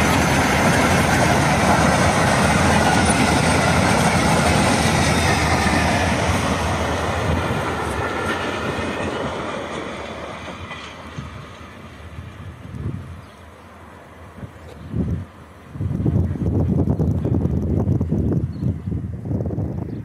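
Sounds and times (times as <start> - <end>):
freight train wheels clattering: 0.0 - 11.8.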